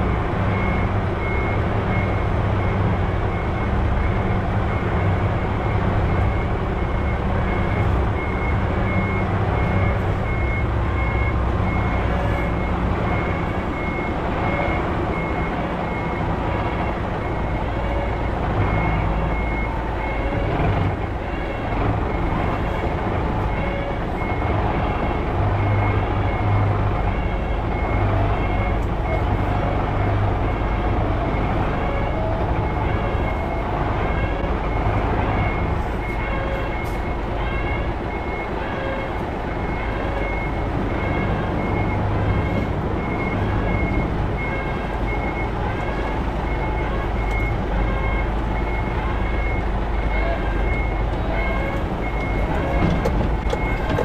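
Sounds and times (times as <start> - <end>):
diesel engine rumble: 0.0 - 54.0
truck reverse alarm beeping: 0.0 - 54.0.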